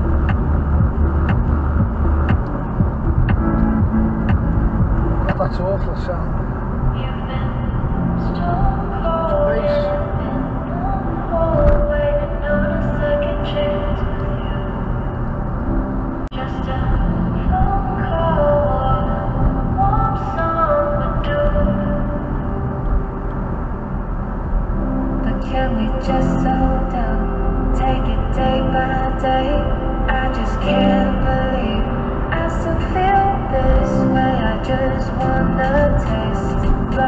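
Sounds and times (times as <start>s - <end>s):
melodic song: 0.0s - 37.0s.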